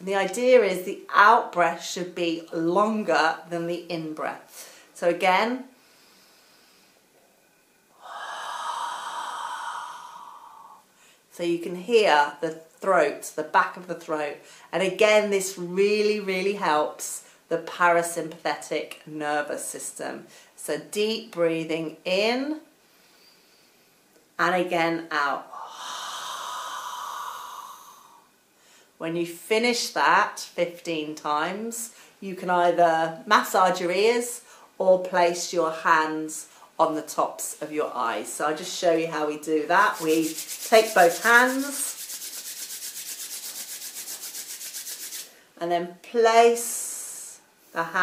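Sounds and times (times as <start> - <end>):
woman exhaling slowly: 7.9 - 11.2, 25.5 - 28.9.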